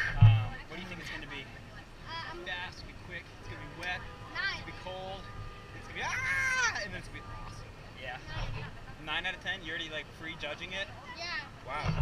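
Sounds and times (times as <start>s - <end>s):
people calling out and exclaiming: 0.0s - 9.0s, 10.8s - 12.0s.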